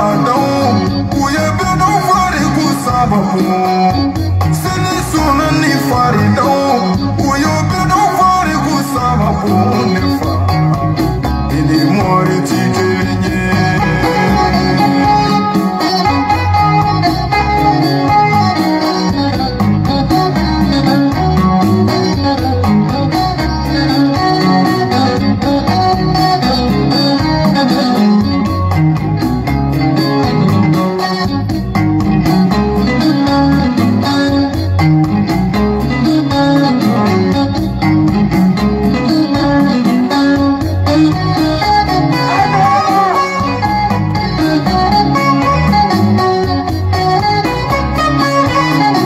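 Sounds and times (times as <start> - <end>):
plucked guitar line: 0.0 - 49.0
pulsing bass: 0.0 - 49.0.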